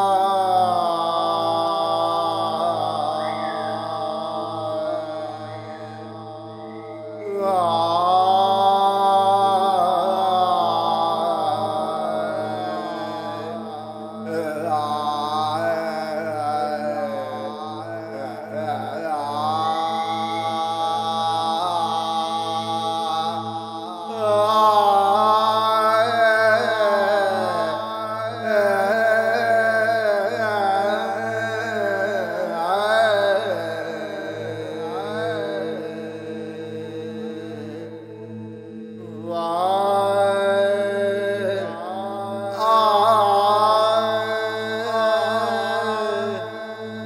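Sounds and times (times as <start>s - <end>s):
chanted vocal music: 0.0s - 47.0s
low drone: 0.0s - 47.0s
person singing devotional song: 0.0s - 47.0s.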